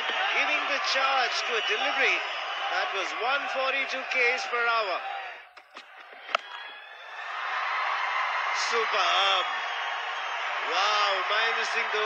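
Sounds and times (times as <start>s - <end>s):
faint stadium ambience: 0.0s - 12.0s.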